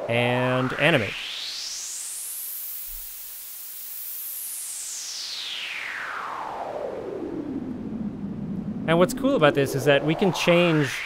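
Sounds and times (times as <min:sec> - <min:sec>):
filtered white noise gliding down: 0:00.0 - 0:11.0.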